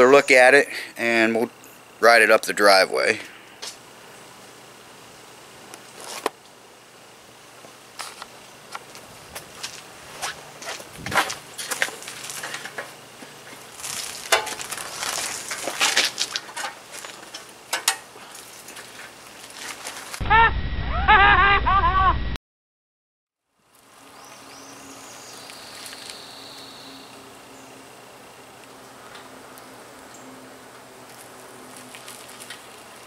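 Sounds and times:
bicycle clicks and rattles: 0:11.2 - 0:20.2, 0:29.1 - 0:33.0.

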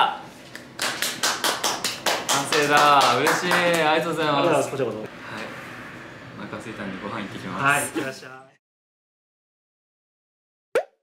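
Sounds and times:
hands clapping quickly: 0:00.5 - 0:04.0.

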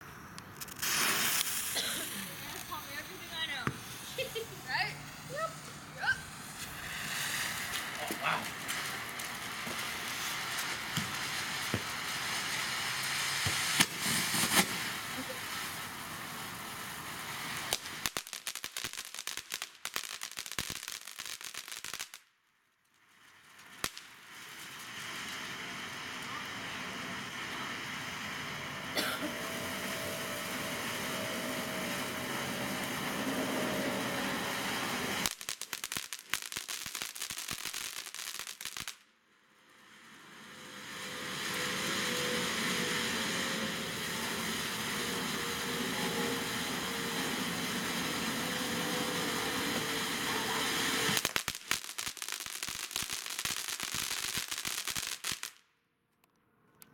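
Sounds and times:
firework fountain hissing: 0:00.0 - 0:22.2, 0:23.0 - 0:55.6
rapid firework crackling: 0:00.0 - 0:22.3, 0:22.9 - 0:55.7.

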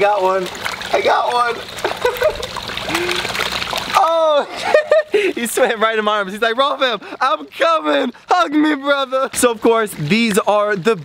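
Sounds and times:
fish thrashing and splashing water: 0:00.0 - 0:11.0.

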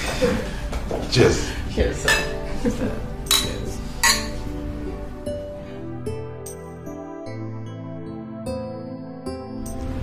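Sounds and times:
soft background music: 0:00.0 - 0:10.0
glasses clinking: 0:02.1 - 0:02.4, 0:03.2 - 0:04.5.

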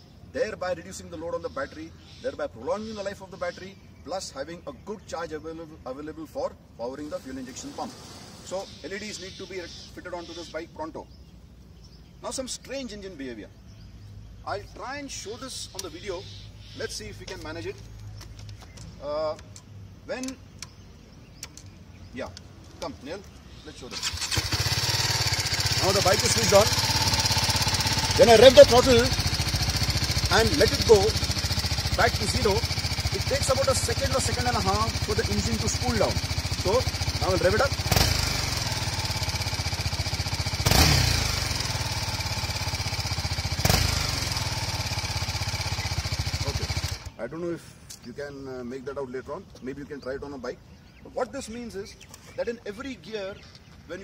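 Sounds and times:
faint outdoor background: 0:00.0 - 0:54.0
motorcycle engine idling: 0:15.4 - 0:20.9, 0:24.0 - 0:47.2
sharp clicks: 0:15.6 - 0:16.0, 0:17.2 - 0:23.4
engine revving with throttle blips: 0:23.8 - 0:47.2.

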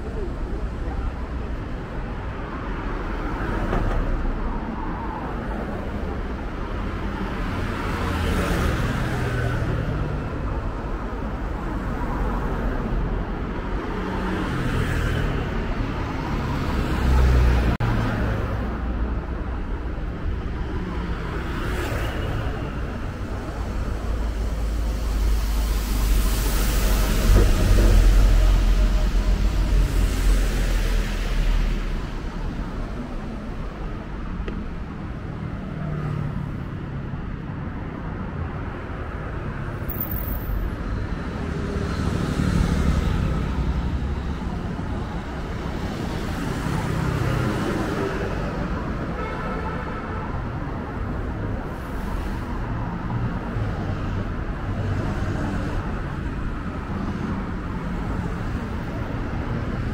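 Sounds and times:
cars passing: 0:00.0 - 0:49.3, 0:49.9 - 0:59.9
deep road rumble: 0:00.0 - 0:49.3.

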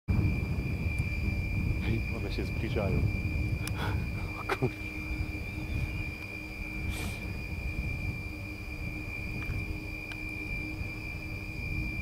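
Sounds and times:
high-pitched whine: 0:00.1 - 0:12.0
wind turbine low rumble: 0:00.1 - 0:12.0.

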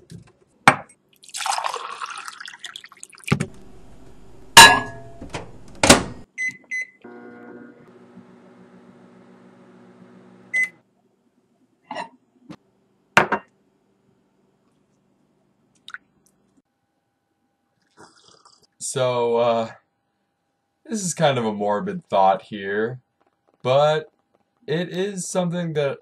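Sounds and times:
water poured into a cup: 0:01.2 - 0:03.3, 0:17.8 - 0:18.7
microwave beep: 0:04.6 - 0:05.3, 0:06.4 - 0:07.7, 0:10.5 - 0:10.8
knocks and clunks: 0:04.6 - 0:06.2
microwave oven humming: 0:07.0 - 0:10.8.

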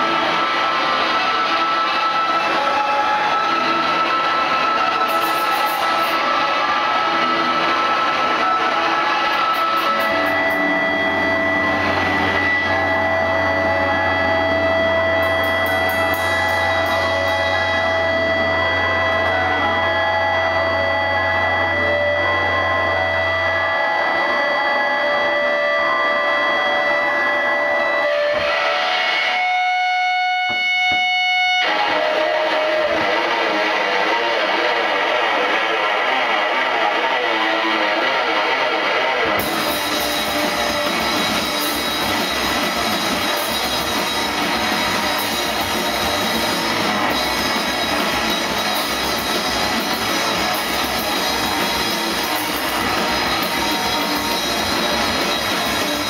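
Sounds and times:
low drone: 0:00.0 - 0:29.4
distorted noise rock guitar: 0:00.0 - 0:56.0
guitar feedback tones: 0:00.0 - 0:56.0.

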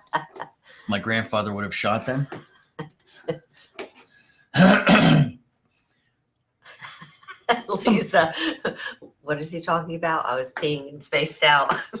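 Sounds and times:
person clearing throat: 0:04.6 - 0:05.4.

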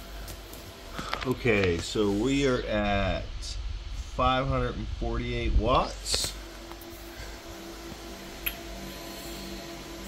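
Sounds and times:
computer cooling fans humming: 0:00.0 - 0:10.0.

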